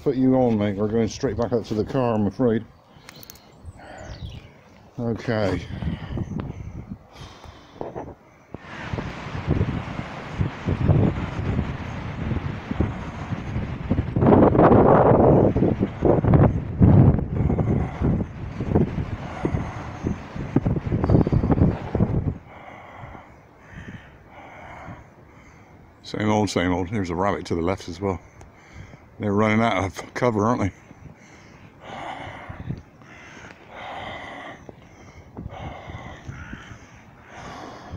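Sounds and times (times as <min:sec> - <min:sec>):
rough rumbling wind on microphone: 0:00.0 - 0:37.9.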